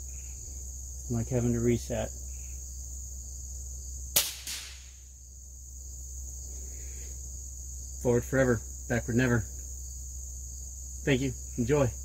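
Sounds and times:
crickets chirping: 0.0 - 12.0
sharp crack: 4.1 - 5.1.

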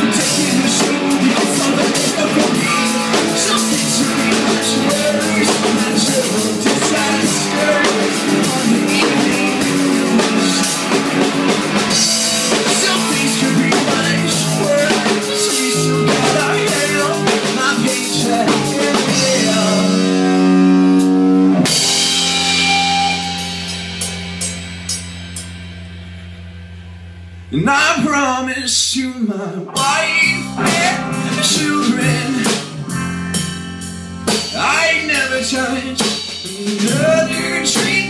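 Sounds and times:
rock band playing live: 0.0 - 28.8, 29.7 - 38.0.

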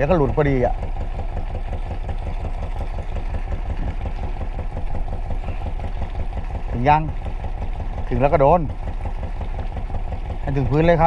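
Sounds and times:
boat engine idling: 0.0 - 11.0.

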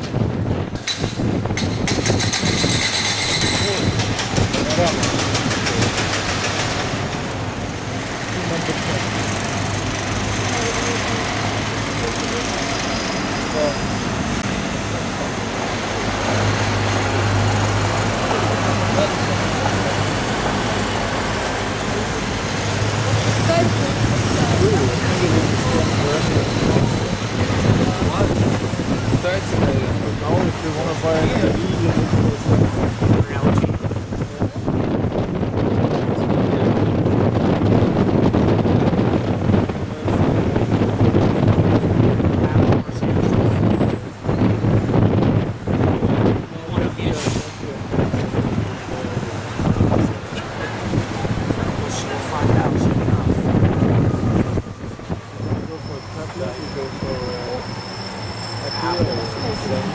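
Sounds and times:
wind buffeting microphone: 0.0 - 57.8
bus engine hum: 0.0 - 59.9
city street traffic: 0.0 - 59.9.

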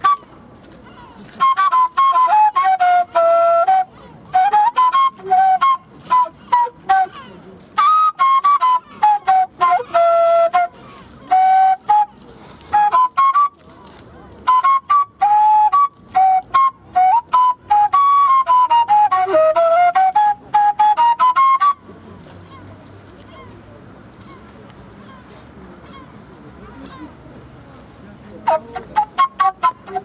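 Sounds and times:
flute playing short notes: 0.0 - 13.7, 14.4 - 22.7, 28.4 - 30.0.

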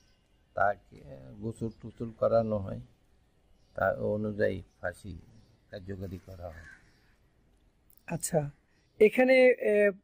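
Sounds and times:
faint bird call: 5.3 - 7.3.

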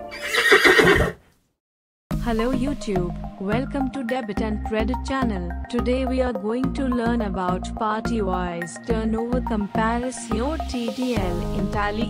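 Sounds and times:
horse whinny: 0.0 - 1.2.

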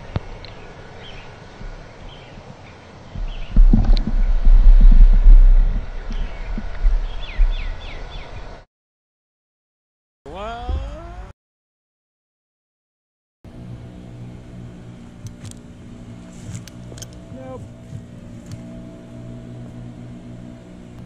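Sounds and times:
small birds chirping: 0.0 - 3.6, 6.1 - 8.6
low rumble: 0.0 - 8.6, 13.5 - 21.0
outdoor background noise: 0.0 - 8.7, 13.5 - 21.0.

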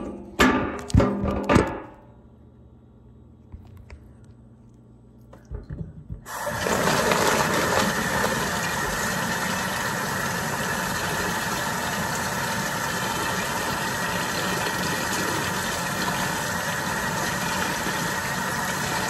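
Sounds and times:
faucet water running into sink: 6.3 - 19.0.

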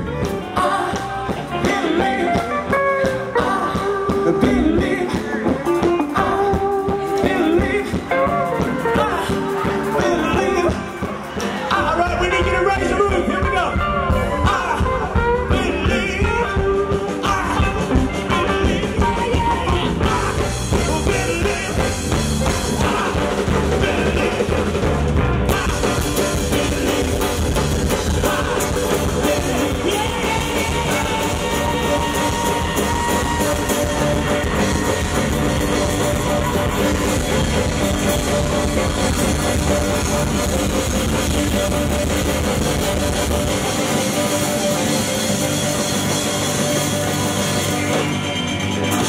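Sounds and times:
person singing: 0.0 - 24.9, 25.5 - 48.0
bass: 0.0 - 49.0
drums: 0.0 - 49.0
electric guitars: 0.0 - 49.0
live rock and roll band: 0.0 - 49.0.

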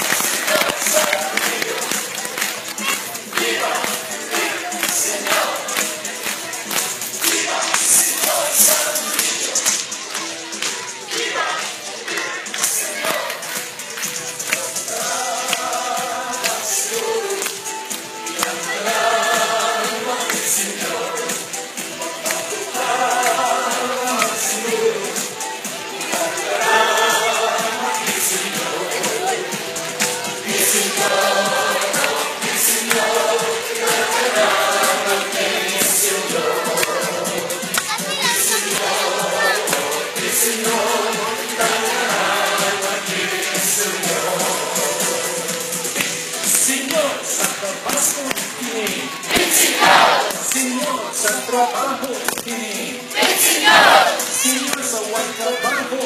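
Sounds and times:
crowd: 0.0 - 56.0
loud live music with singing: 0.0 - 56.0.

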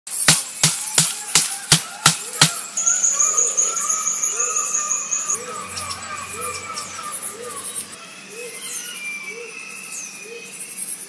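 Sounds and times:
blade chopping bamboo: 0.2 - 2.6
bird-like calls: 0.2 - 11.0
insect trilling: 0.8 - 11.0.

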